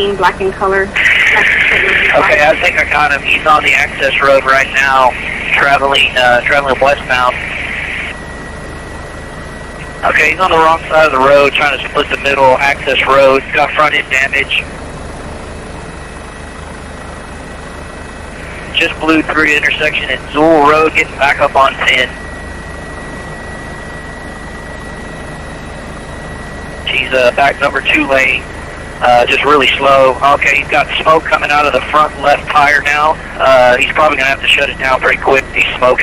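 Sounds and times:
thin high tone: 0:00.0 - 0:14.7, 0:18.3 - 0:28.4
helicopter engine and rotor: 0:00.0 - 0:36.0.

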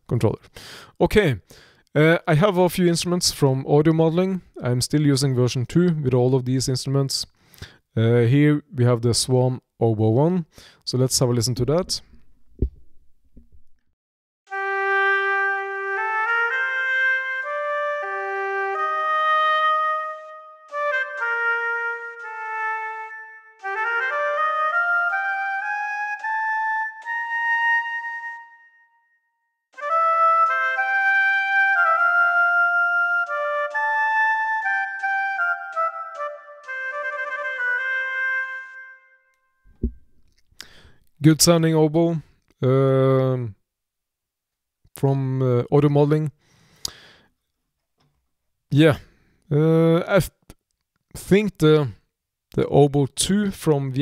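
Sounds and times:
oboe playing slow melody: 0:14.5 - 0:40.0.

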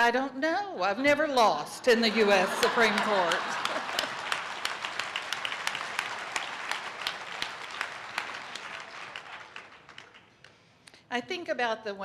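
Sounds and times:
audience applauding: 0:02.1 - 0:10.6.

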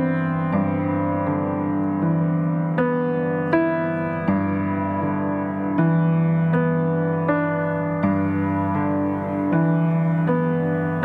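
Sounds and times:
slow piano music: 0:00.0 - 0:11.0.

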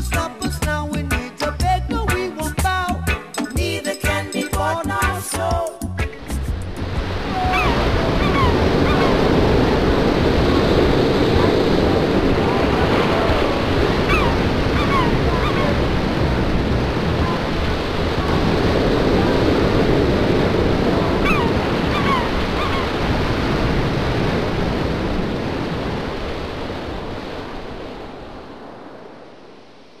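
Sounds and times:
steady rushing noise: 0:06.1 - 0:30.0
short falling cries: 0:07.2 - 0:09.2.

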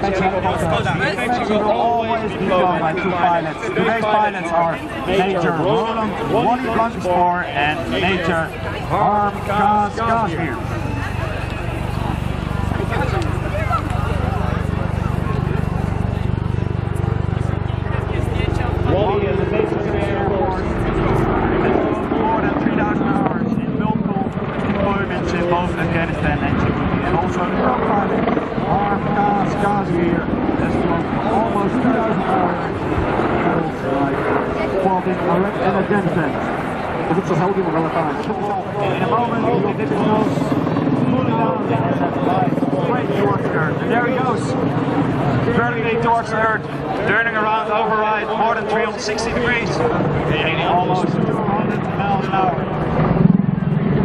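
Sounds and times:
helicopter rotor and turbine engines: 0:00.0 - 0:54.0
voices: 0:00.0 - 0:54.0.

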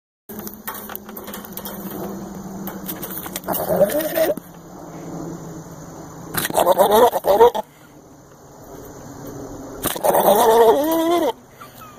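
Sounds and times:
low steady hum: 0:00.3 - 0:11.9.

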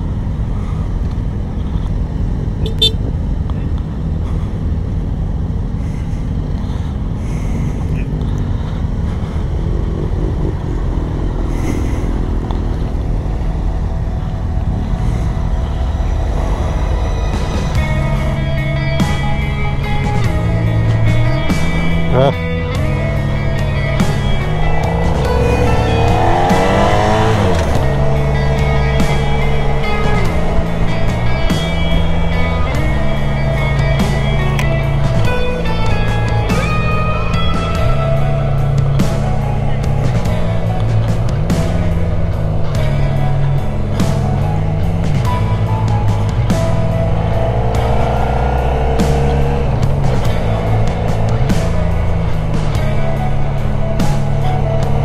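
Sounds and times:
motorcycle engine: 0:00.0 - 0:55.0
road noise: 0:00.0 - 0:55.0
music with a steady beat: 0:16.3 - 0:55.0.

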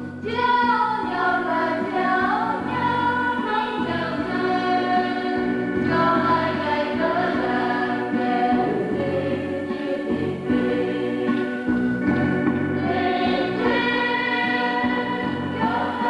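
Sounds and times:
women's choir singing a hymn: 0:00.2 - 0:16.0.

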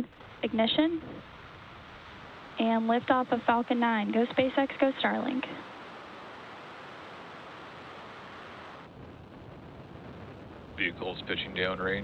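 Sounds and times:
rocket engines roaring: 0:08.8 - 0:12.0.

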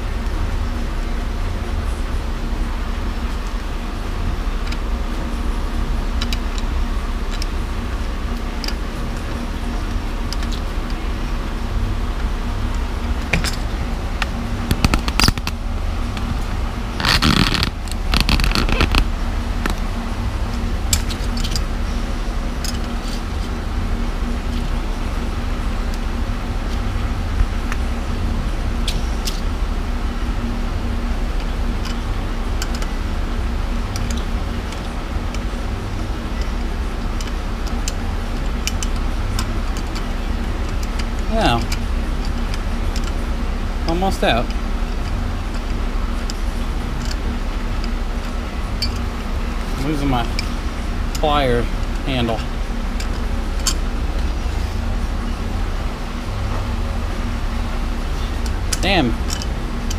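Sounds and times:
fan hum: 0:00.0 - 0:59.9
hand tools clicking on metal: 0:36.4 - 0:43.2, 0:47.8 - 0:49.2, 0:58.3 - 0:59.9.

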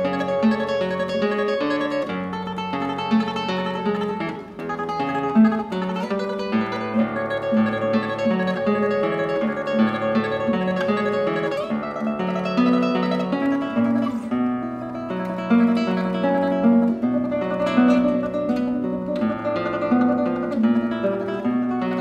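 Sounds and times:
fingerstyle classical guitar: 0:00.0 - 0:22.0.

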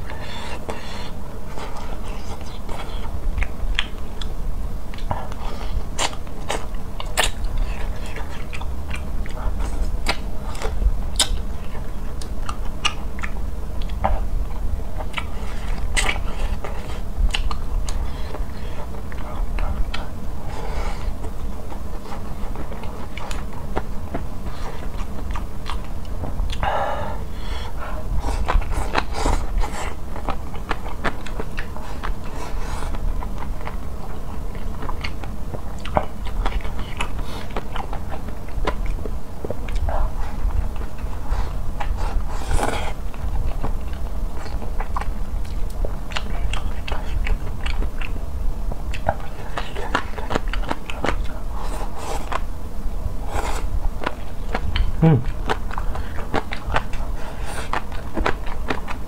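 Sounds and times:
person chewing food: 0:00.0 - 0:48.2, 0:48.9 - 0:52.5, 0:53.2 - 0:59.0.

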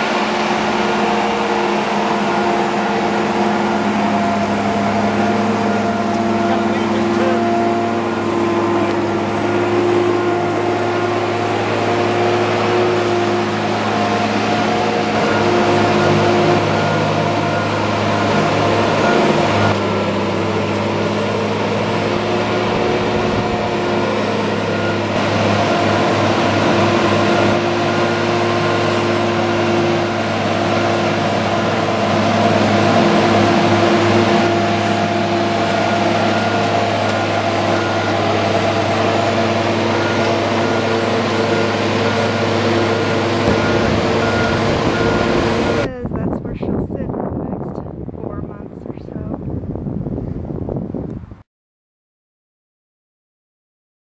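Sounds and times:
boat hoist engine running: 0:00.0 - 0:47.1.

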